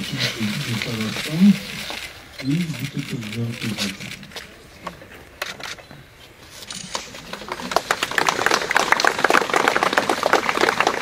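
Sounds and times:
crowd applauding: 7.2s - 11.0s.

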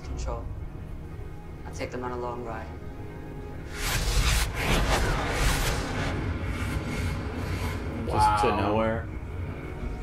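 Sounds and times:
sci-fi soundtrack music: 0.0s - 10.0s
whooshing noise: 3.7s - 8.1s
deep rumble: 3.7s - 8.2s.

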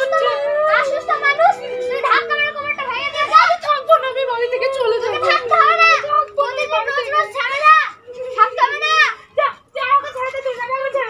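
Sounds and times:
high-pitched voices talking: 0.0s - 11.0s.

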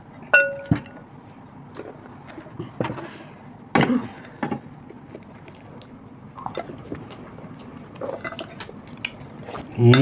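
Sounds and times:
dish struck with clink: 0.3s - 1.0s
handling food and plates: 0.3s - 3.3s.

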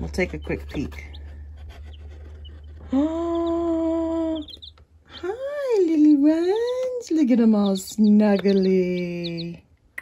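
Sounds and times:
chicks peeping: 0.0s - 9.7s.

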